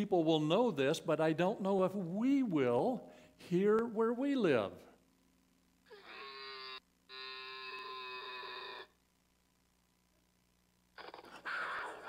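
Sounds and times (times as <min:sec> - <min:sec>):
animal call through phone speaker: 0:05.9 - 0:09.0, 0:11.0 - 0:12.0.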